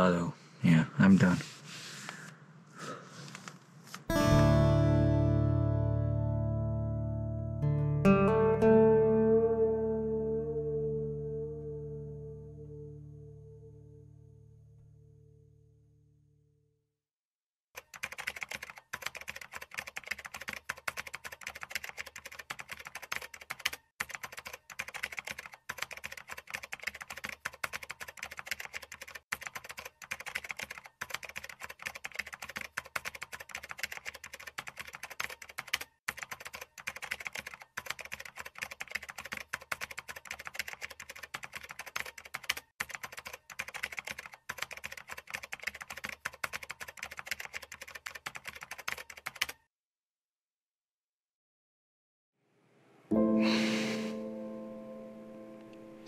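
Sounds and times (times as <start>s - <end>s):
rapid keyboard typing: 17.8s - 49.6s.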